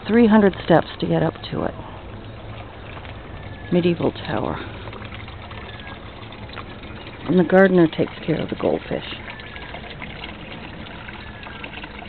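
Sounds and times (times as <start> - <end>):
pond pump humming: 0.0 - 12.0
water trickling: 0.0 - 12.0.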